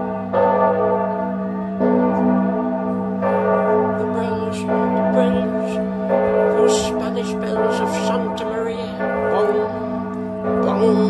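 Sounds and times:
large church bell tolling: 0:00.0 - 0:11.0.

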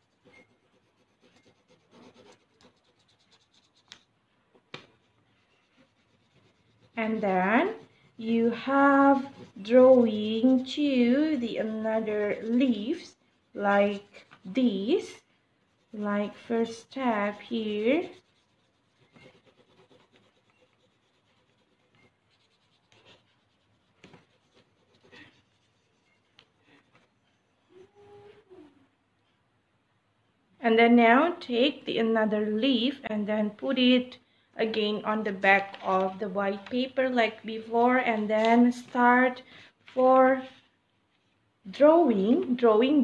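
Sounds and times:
pencil scratching on paper: 0:00.0 - 0:04.1, 0:04.8 - 0:27.3.

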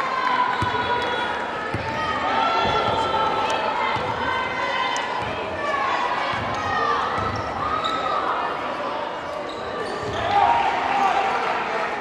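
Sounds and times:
people shouting and talking: 0:00.0 - 0:12.0.

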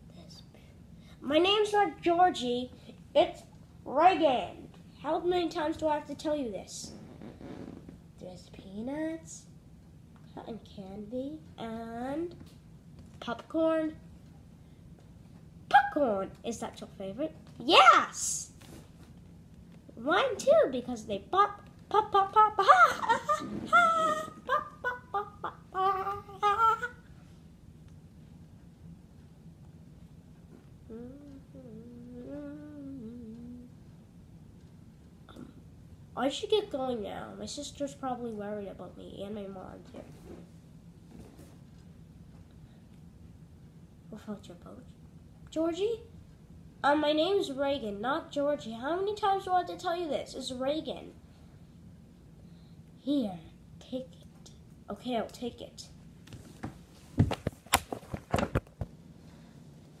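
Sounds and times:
child humming a tune: 0:22.8 - 0:27.0, 0:30.9 - 0:33.8.

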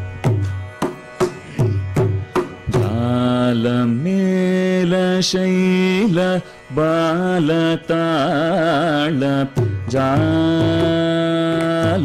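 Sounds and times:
man singing long notes: 0:02.6 - 0:12.0.

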